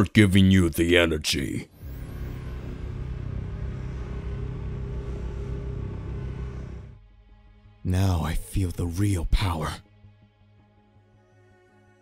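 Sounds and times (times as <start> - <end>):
low rumbling drone: 1.7 - 8.4.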